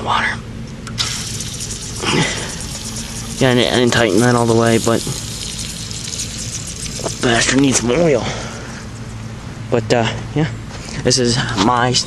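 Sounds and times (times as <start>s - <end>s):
steady low hum: 0.0s - 12.0s
hissing hose fitting: 0.9s - 8.2s
water rushing through hose: 1.0s - 8.3s.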